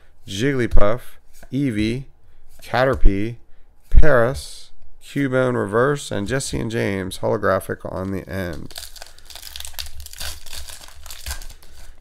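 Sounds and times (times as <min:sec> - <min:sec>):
foil wrapper crinkling: 0:08.0 - 0:12.0.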